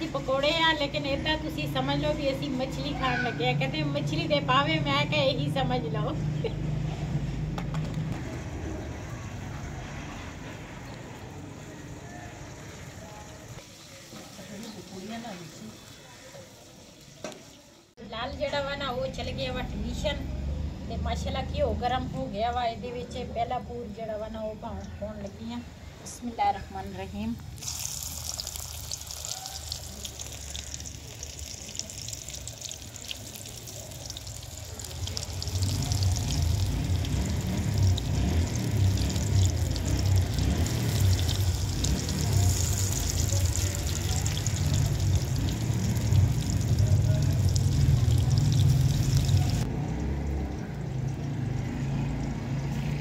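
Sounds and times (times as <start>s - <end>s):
batter frying in hot oil: 0.0s - 2.7s, 10.8s - 18.0s, 27.1s - 53.0s.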